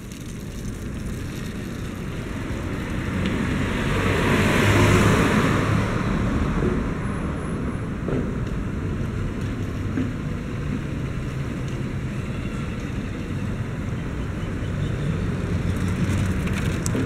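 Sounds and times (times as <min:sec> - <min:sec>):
low rumbling background noise: 0:00.0 - 0:14.3.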